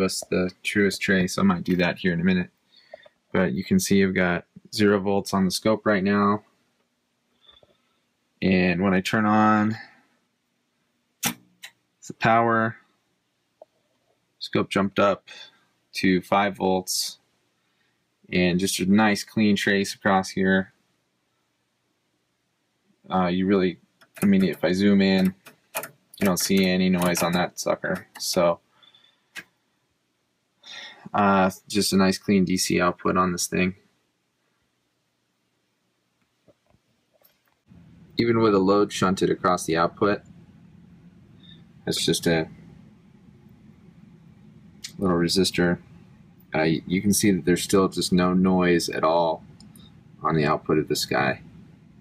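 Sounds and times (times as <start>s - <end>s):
power switch clicking: 11.2s - 11.8s, 25.2s - 28.4s.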